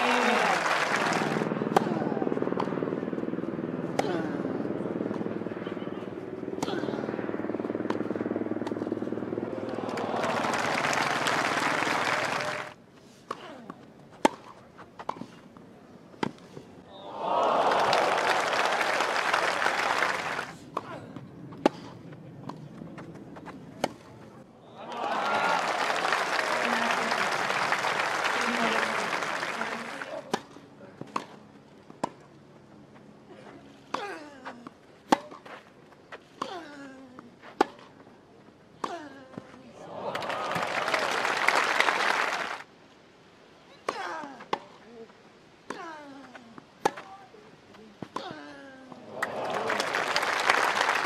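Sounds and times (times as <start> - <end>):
crowd applauding and cheering: 0.0 - 1.5, 9.5 - 12.8, 17.1 - 20.5, 24.8 - 30.1, 39.9 - 42.6, 49.1 - 51.0
racket striking tennis ball: 35.0 - 35.5, 46.8 - 47.1.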